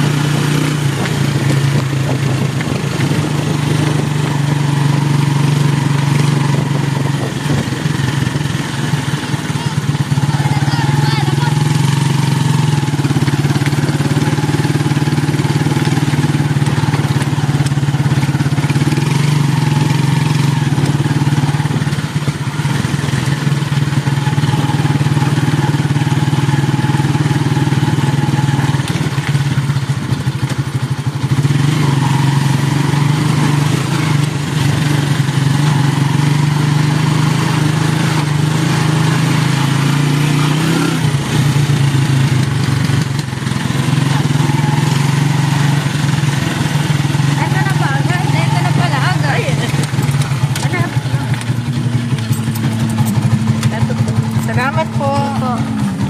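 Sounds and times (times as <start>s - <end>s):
road and wind noise: 0.0s - 56.0s
small motorcycle engine running: 0.0s - 56.0s.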